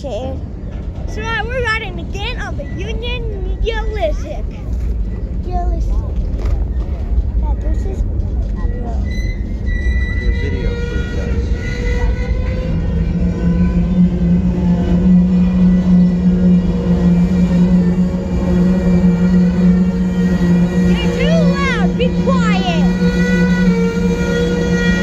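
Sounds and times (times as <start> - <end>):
strong low drone: 0.0 - 25.0
train wheels rumbling on rail: 0.0 - 25.0
high wheel squeals: 1.1 - 25.0.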